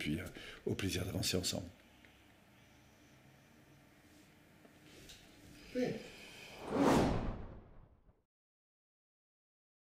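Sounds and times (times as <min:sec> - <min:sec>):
whoosh swish: 0:06.5 - 0:08.0.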